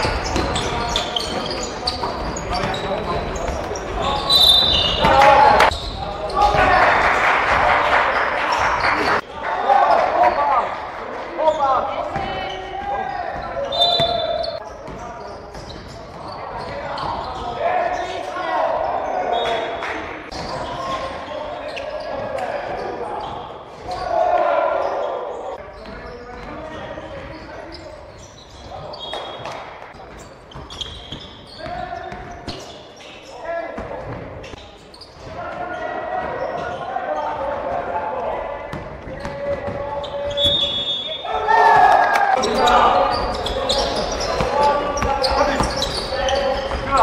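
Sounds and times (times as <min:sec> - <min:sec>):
players shouting: 0:04.0 - 0:14.6, 0:16.6 - 0:25.6, 0:35.4 - 0:47.0
basketball bouncing on court: 0:43.4 - 0:47.0.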